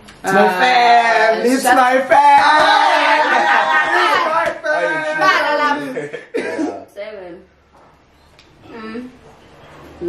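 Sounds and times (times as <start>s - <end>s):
person coughing: 6.3s - 6.8s.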